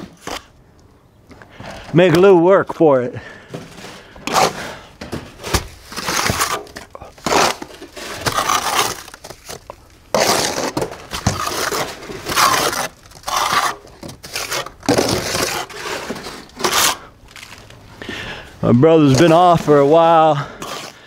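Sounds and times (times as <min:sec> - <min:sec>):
trowel scraping plaster: 0:03.7 - 0:17.6, 0:19.0 - 0:21.0.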